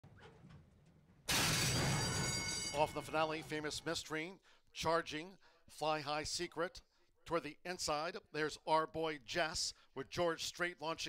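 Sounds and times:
starting gate doors crashing open: 1.3s - 2.7s
start bell ringing: 1.8s - 3.3s.

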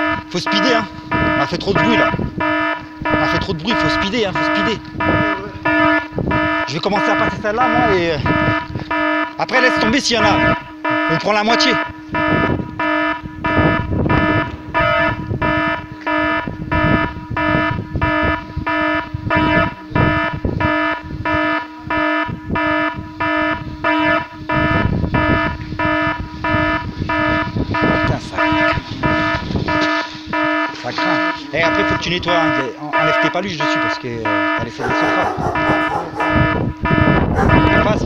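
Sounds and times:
security alarm beeping: 0.0s - 38.0s.

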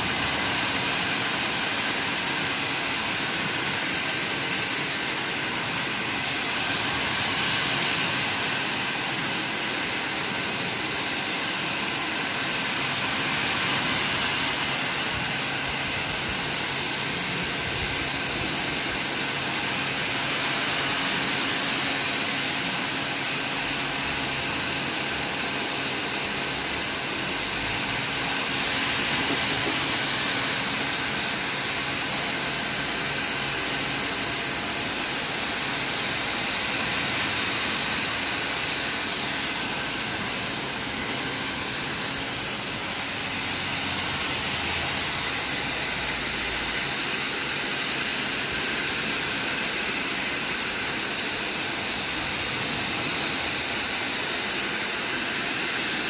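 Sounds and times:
pressure washer water jet hissing: 0.0s - 56.0s.

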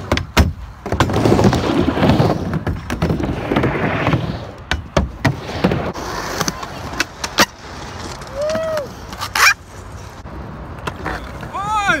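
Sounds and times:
skateboard clacks: 0.0s - 9.6s
skateboard wheels rolling on concrete: 0.0s - 12.0s.

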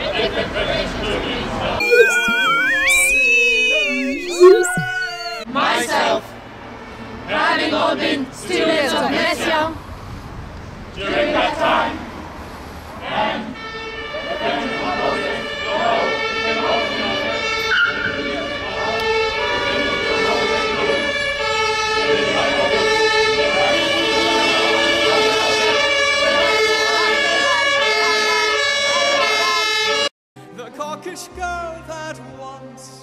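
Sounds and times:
emergency vehicle siren: 1.8s - 5.5s
voices holding sustained notes: 1.8s - 5.5s.

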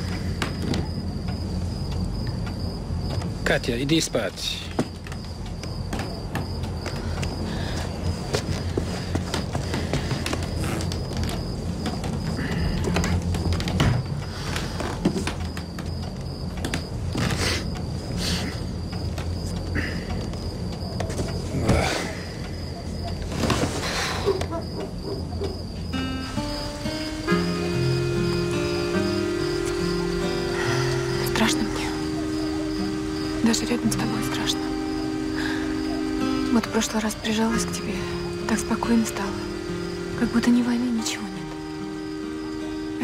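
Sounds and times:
crickets chirring: 0.0s - 43.0s
low musical drone: 26.0s - 43.0s
pitched score notes: 26.0s - 43.0s.

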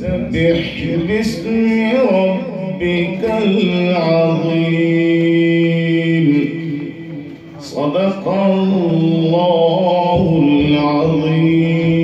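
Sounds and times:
man reciting melodically: 0.0s - 12.0s.

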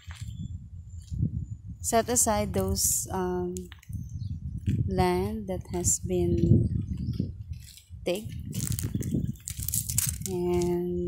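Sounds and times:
wind buffeting microphone: 0.0s - 11.0s
person speaking: 4.9s - 6.7s, 8.0s - 8.8s, 10.1s - 11.0s.

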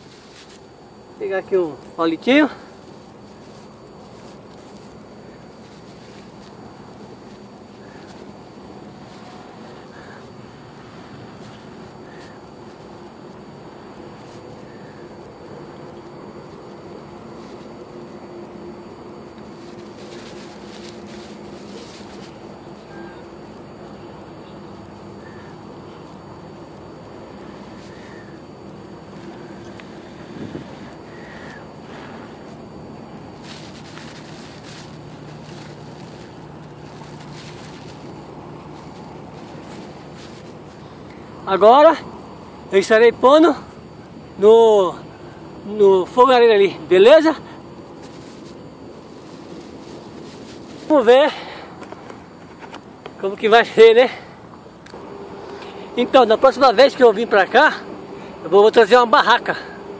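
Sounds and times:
faint chirps: 19.6s - 26.5s.

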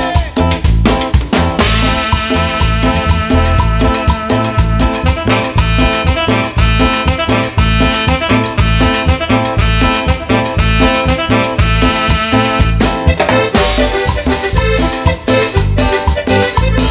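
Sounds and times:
drum kit: 0.0s - 16.9s
electric bass: 0.0s - 16.9s
electric guitar: 0.0s - 16.9s
synth keyboard: 1.6s - 16.9s.

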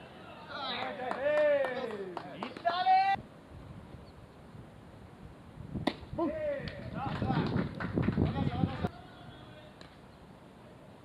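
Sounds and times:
baseball bat hitting ball: 5.8s - 6.1s.

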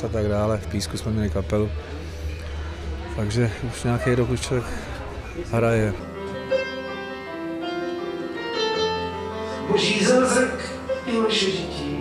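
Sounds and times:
keyboard slow melody: 4.9s - 12.0s.

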